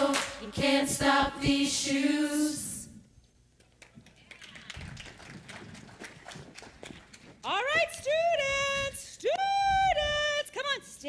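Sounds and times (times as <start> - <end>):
children's footsteps on stage floor: 3.9 - 8.1.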